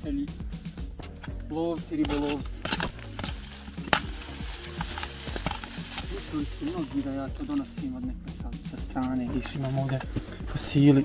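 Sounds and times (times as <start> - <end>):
hand pick scraping earth: 1.0 - 8.0
soil and grit falling: 1.2 - 7.9.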